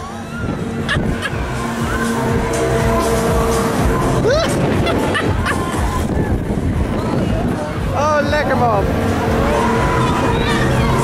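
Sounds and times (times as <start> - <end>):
loud rushing noise: 0.0 - 11.0
music from ride sound system: 0.0 - 11.0.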